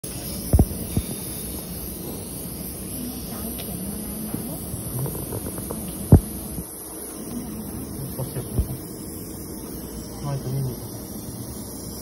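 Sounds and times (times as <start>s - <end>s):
equipment hum and hiss: 0.0s - 12.0s.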